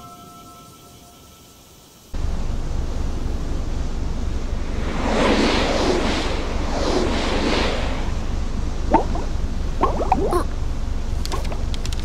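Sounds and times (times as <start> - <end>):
steady wind: 1.4 - 12.0
low rumble: 2.2 - 12.0
sea waves washing in: 4.0 - 10.8.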